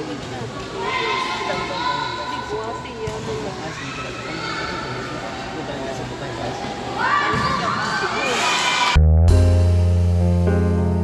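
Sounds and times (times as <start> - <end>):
girls shouting and calling: 0.7 - 5.4.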